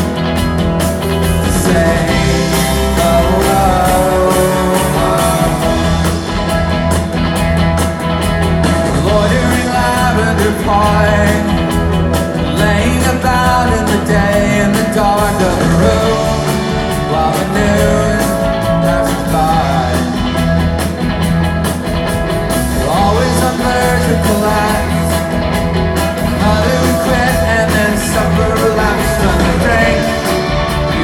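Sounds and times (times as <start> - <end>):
bass guitar: 0.0 - 31.0
drums: 0.0 - 31.0
electric guitars: 0.0 - 31.0
keyboards: 0.0 - 31.0
person singing: 1.3 - 6.4, 8.8 - 20.5, 22.6 - 25.3, 26.2 - 31.0.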